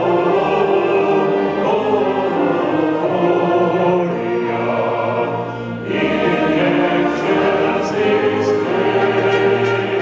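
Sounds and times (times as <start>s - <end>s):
choir singing: 0.0s - 10.0s
concert band playing: 8.0s - 10.0s.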